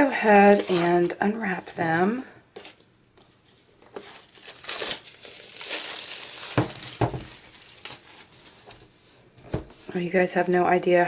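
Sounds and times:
plastic shrink-wrap crinkling: 0.2 - 1.2, 3.5 - 8.8.

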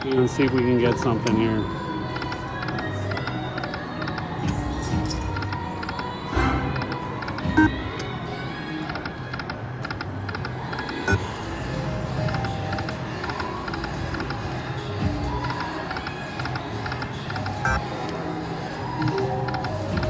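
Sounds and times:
slot machine music: 6.3 - 7.7, 17.6 - 17.9.

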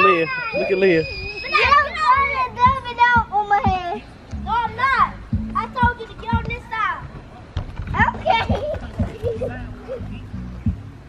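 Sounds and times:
children calling and squealing: 0.0 - 10.4.

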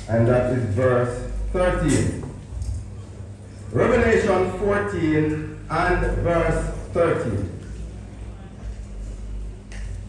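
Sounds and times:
man speaking through microphone: 0.0 - 2.4, 3.7 - 7.8
low background noise: 0.0 - 10.0.

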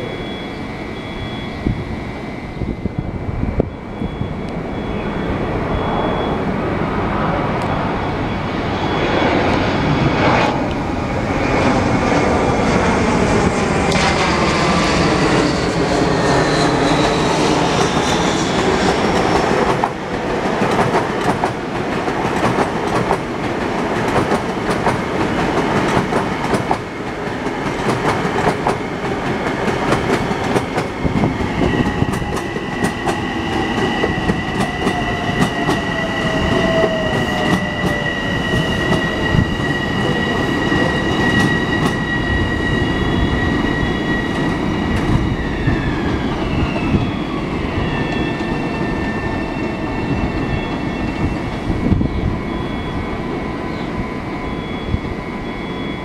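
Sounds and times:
high whine: 0.0 - 20.4, 28.8 - 56.0
electric train passing: 0.0 - 56.0.

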